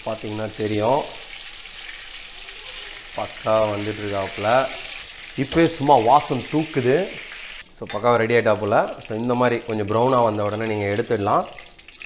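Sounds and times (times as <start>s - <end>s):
meatballs sizzling in hot oil: 0.0s - 7.6s, 8.5s - 12.0s.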